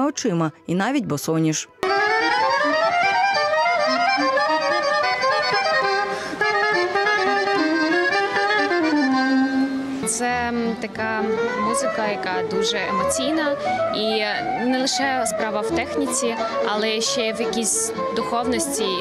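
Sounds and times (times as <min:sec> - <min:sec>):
accordion chords: 0:01.8 - 0:19.0
soprano saxophone melody: 0:01.8 - 0:19.0.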